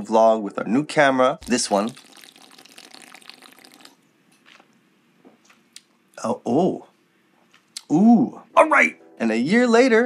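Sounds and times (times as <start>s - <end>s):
drink gulped from a can: 1.4s - 4.0s.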